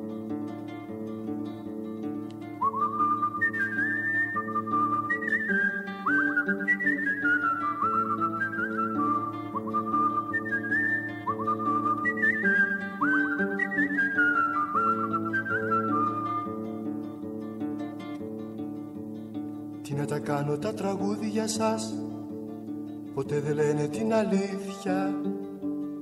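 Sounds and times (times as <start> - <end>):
whistled melody: 1.3 - 18.7.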